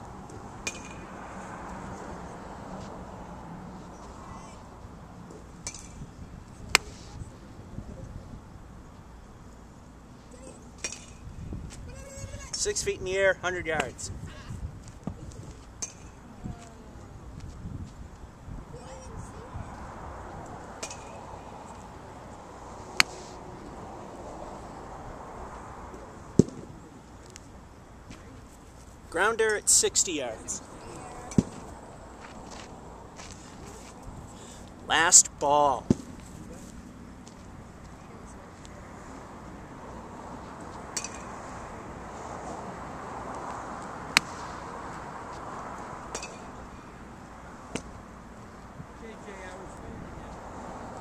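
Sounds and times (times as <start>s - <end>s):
low outdoor rumble: 0.0s - 29.3s
golf club striking ball: 0.6s - 1.1s.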